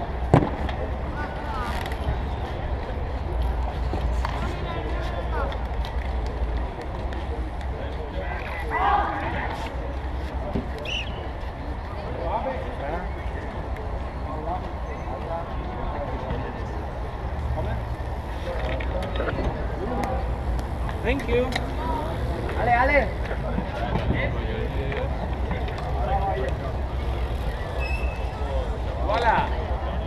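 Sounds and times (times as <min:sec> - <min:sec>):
bike tyres rolling on concrete: 0:00.0 - 0:30.0
distant shouts: 0:08.3 - 0:09.6.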